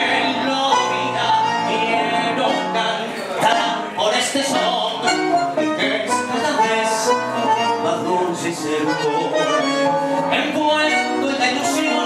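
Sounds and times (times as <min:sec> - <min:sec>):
bandoneon: 0:00.0 - 0:12.0
guitar: 0:00.0 - 0:12.0
piano: 0:00.0 - 0:12.0.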